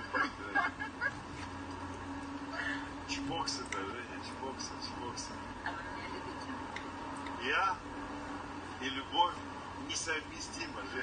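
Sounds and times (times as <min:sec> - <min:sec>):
car cabin drone: 0:00.0 - 0:11.0.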